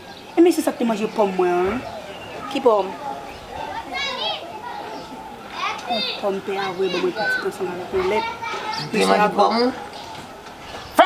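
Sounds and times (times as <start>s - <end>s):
people talking: 0.4s - 11.0s.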